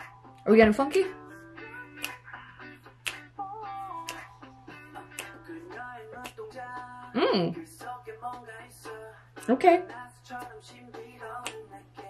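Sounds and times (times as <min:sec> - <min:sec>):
funky jazzy pop song: 0:00.0 - 0:12.0.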